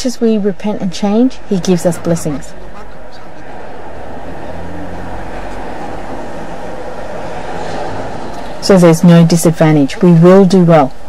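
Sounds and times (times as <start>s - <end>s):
low rushing noise: 0.4s - 8.8s.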